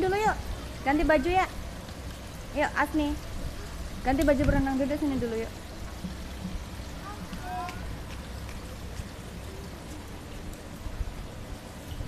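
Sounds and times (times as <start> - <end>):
pool water splashing and trickling: 0.0 - 12.0.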